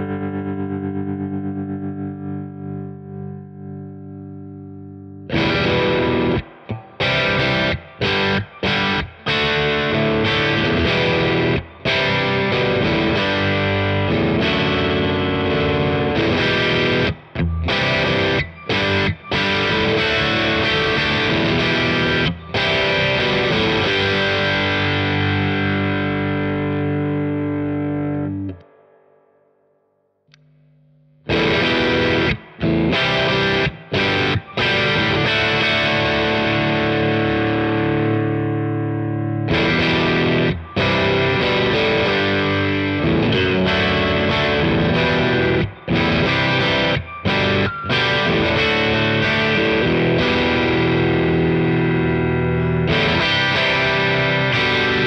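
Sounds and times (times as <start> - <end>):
electric guitar chords and riffs: 0.0 - 55.0.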